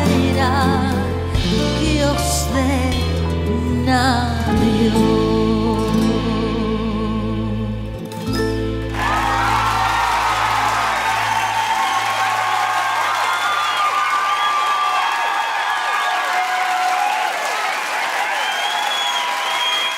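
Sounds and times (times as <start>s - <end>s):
applause and cheering: 8.9s - 19.9s.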